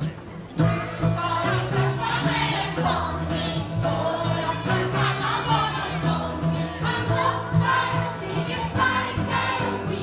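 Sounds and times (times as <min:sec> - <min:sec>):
folk music group: 0:00.0 - 0:10.0.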